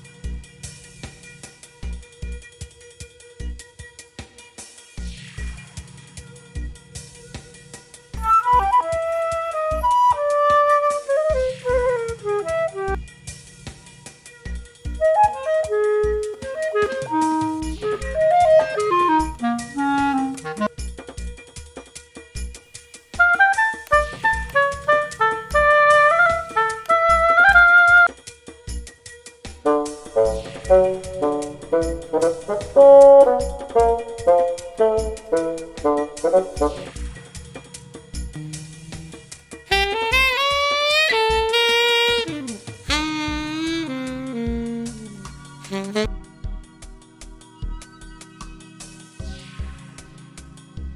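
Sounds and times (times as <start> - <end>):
woodwind melodies: 8.2 - 13.0, 15.0 - 20.7, 23.2 - 28.1, 38.4 - 46.1
electronic drum beat: 38.4 - 46.1
repeating bass line: 42.1 - 46.1.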